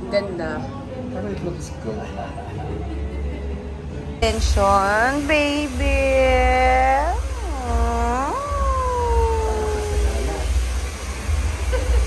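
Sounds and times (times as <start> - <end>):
dog whining: 7.2 - 10.5.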